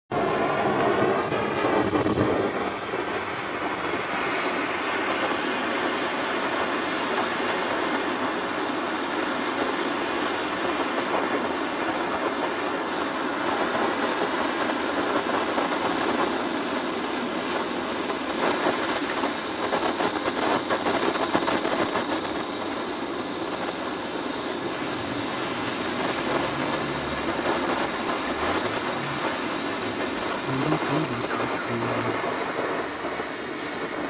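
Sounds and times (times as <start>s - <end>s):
machinery running: 24.5s - 34.0s.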